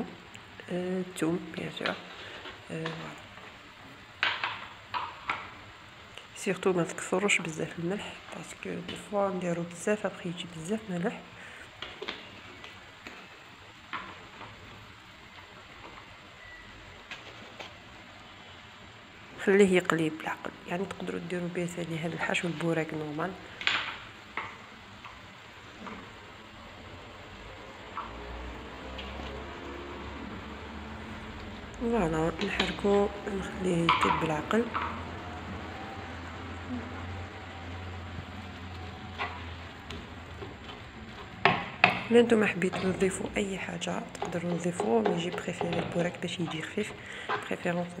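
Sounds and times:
filling sizzling in a frying pan: 0.0 - 48.0.

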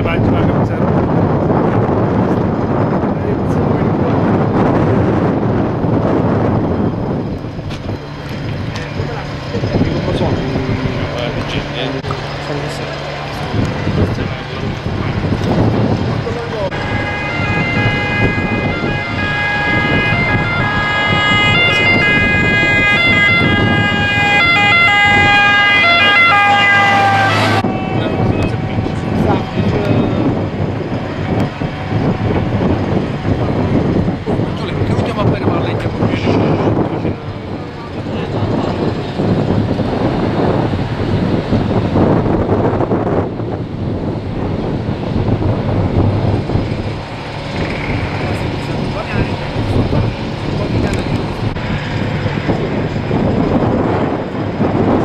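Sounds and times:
traffic: 0.0 - 55.0
voices: 7.9 - 40.0, 47.4 - 54.4
emergency vehicle siren: 16.7 - 34.5.

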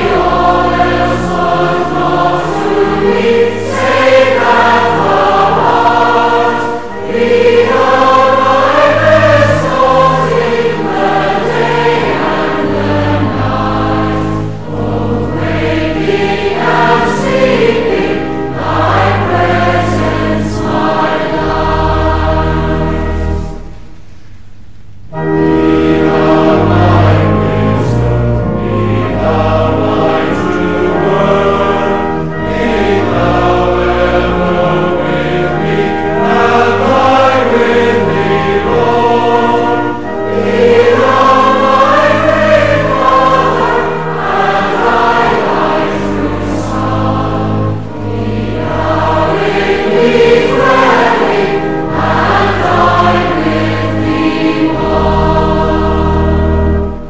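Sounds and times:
congregation singing a hymn: 0.0 - 24.1, 25.1 - 57.0
organ chords: 0.0 - 57.0.

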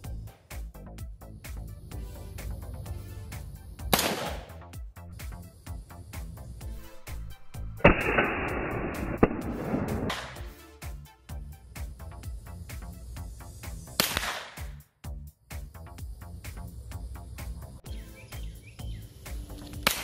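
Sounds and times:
background music with steady beat: 0.0 - 20.0
rifle shots: 3.9 - 4.5, 7.8 - 10.4, 14.0 - 14.7.

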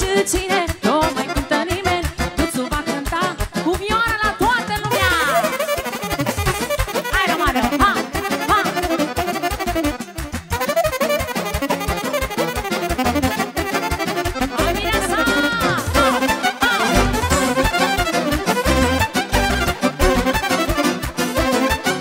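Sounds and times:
saxophone folk dance music: 0.0 - 22.0.

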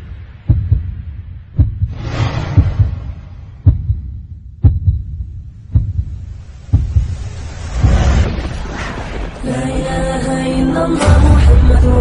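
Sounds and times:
heartbeat thumps: 0.0 - 8.4.

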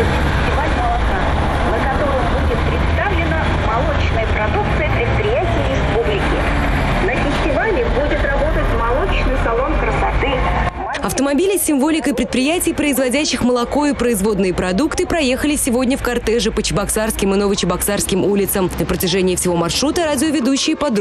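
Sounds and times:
indistinct voices: 0.0 - 21.0
vehicles driving past: 0.0 - 21.0.

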